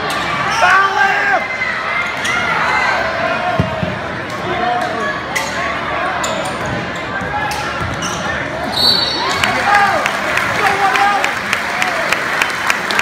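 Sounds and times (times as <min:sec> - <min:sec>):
players and crowd shouting: 0:00.0 - 0:12.2
referee's whistle: 0:08.7 - 0:09.4.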